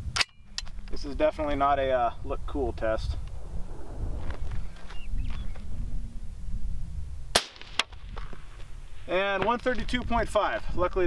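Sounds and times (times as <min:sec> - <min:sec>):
low steady rumble: 0:00.0 - 0:10.3
suppressed rifle shot: 0:07.3 - 0:08.1.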